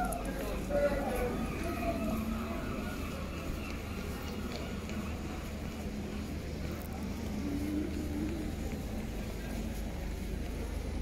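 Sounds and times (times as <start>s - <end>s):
busy street rumble: 0.0s - 11.0s.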